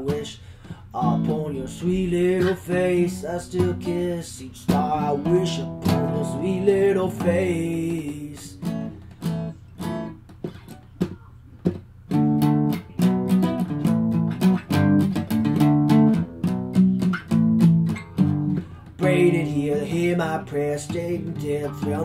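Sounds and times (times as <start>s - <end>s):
acoustic guitar strumming: 0.0s - 22.0s.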